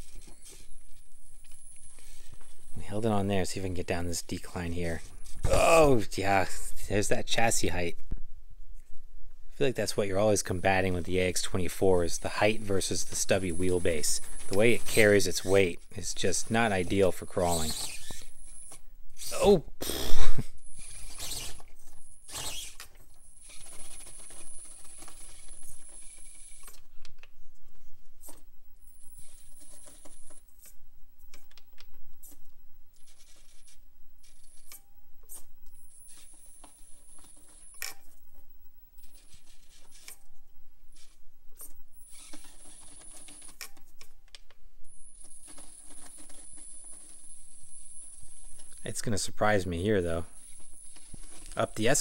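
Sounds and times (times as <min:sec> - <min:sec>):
rc car drivetrain whine: 0:16.8 - 0:18.7, 0:20.6 - 0:26.8, 0:42.0 - 0:43.6.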